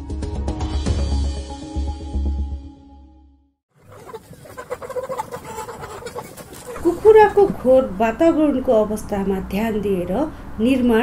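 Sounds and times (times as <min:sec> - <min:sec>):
chickens clucking: 0:03.8 - 0:09.4.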